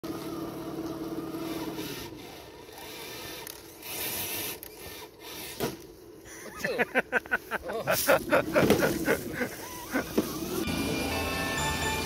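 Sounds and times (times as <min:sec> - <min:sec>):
electric motor and gears whining: 0:00.0 - 0:06.2, 0:08.5 - 0:12.0.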